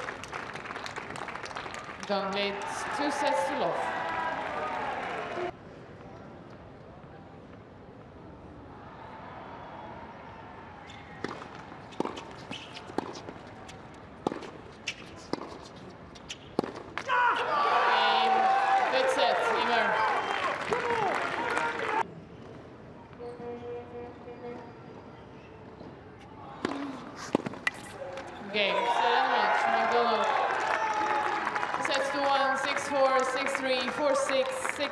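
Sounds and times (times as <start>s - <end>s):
crowd cheering with shouts: 2.3s - 5.5s, 17.1s - 22.0s, 28.5s - 32.5s
tennis ball bounces: 11.2s - 13.5s, 14.2s - 17.1s
tennis racquet strikes: 26.6s - 28.3s.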